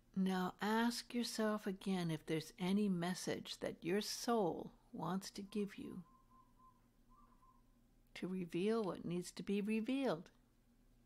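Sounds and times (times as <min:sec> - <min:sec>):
faint thin whistle-like tone: 0:05.4 - 0:07.8.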